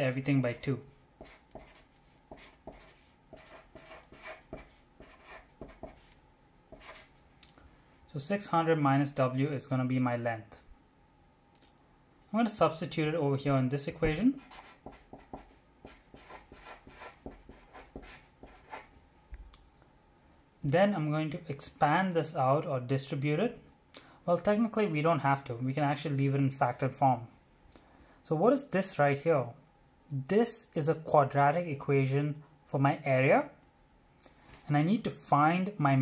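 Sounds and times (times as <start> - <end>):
marker pen scratching on paper: 1.2 - 7.1, 14.4 - 18.9.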